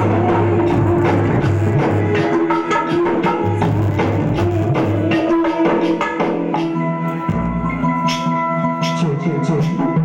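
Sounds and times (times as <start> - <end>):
low drum beat: 0.0 - 5.5.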